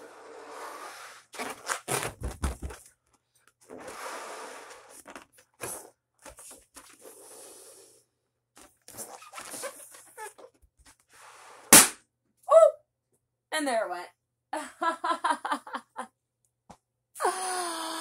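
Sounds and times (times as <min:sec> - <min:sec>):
breath blowing into balloon: 0:00.0 - 0:01.9, 0:03.7 - 0:06.0, 0:06.9 - 0:08.1, 0:11.1 - 0:11.9
rubber balloon rubbing: 0:00.0 - 0:02.8, 0:08.9 - 0:10.6.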